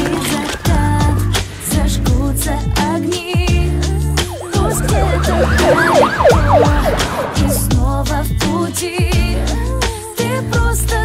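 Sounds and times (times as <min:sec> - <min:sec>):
steady bass of a song: 0:00.0 - 0:11.0
police sirens wailing: 0:03.7 - 0:08.2.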